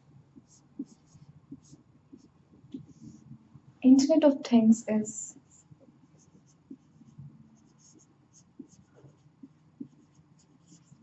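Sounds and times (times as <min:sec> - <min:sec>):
marker writing on whiteboard: 0:00.3 - 0:03.3, 0:05.3 - 0:11.0.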